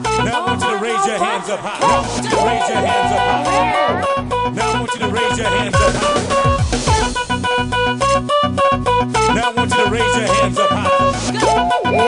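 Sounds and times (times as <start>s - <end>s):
thumping bass beat: 1.8s - 12.0s
high sliding melodic sounds: 2.0s - 4.4s, 11.4s - 12.0s.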